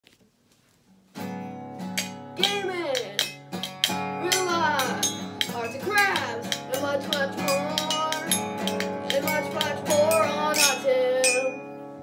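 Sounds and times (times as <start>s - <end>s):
guitar playing: 1.1s - 12.0s.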